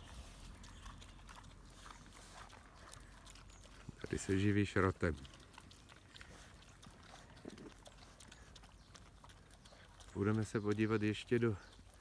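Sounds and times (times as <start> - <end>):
pigs chewing: 0.0 - 12.0.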